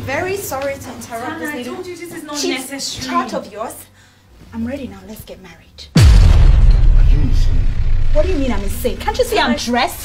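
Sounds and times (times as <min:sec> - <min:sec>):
boom with falling sweep: 0:06.0 - 0:09.4.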